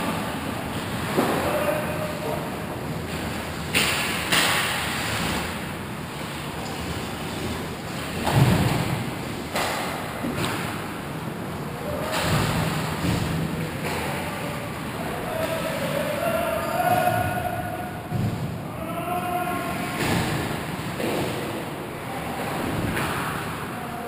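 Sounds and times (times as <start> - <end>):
distant players calling out: 14.2 - 20.0.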